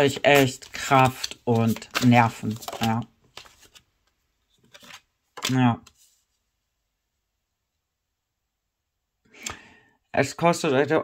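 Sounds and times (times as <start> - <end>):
person breathing in: 9.3 - 10.0.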